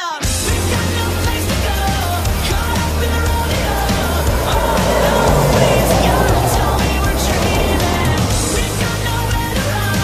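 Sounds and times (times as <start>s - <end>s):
pop music: 0.0s - 10.0s
car driving past: 0.5s - 10.0s.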